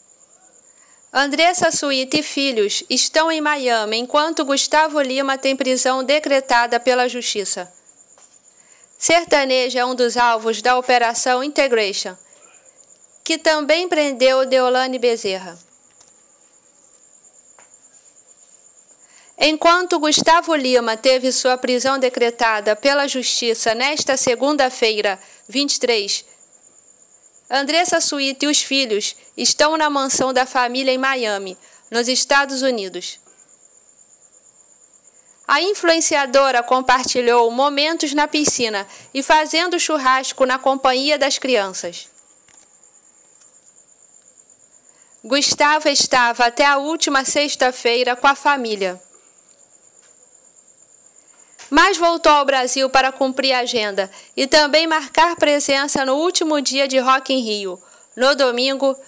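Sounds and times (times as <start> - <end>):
insects trilling: 0.0 - 59.0
low hiss: 0.0 - 59.0.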